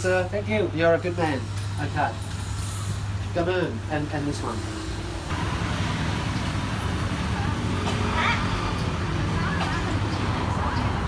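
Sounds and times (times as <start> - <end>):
low traffic rumble: 0.0 - 11.0.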